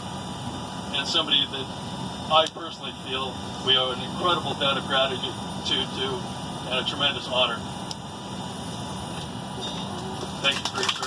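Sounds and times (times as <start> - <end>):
airliner cabin rumble: 0.0 - 11.0.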